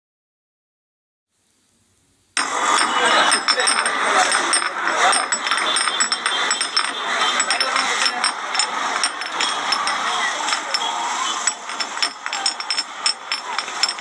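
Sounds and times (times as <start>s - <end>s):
motor traffic: 2.4s - 14.0s
small clicks and clatters: 2.4s - 14.0s
voices chattering: 2.4s - 14.0s.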